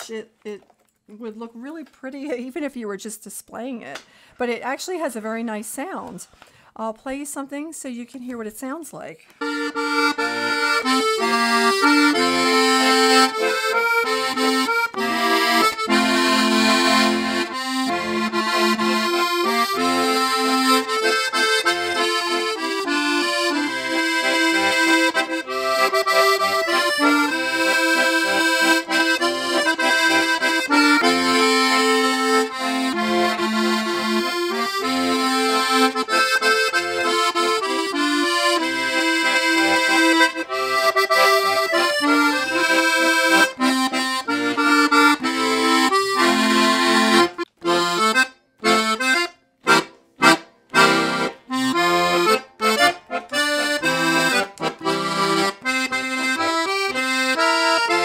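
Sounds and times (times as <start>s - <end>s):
piano accordion playing a tune: 9.4s - 58.0s.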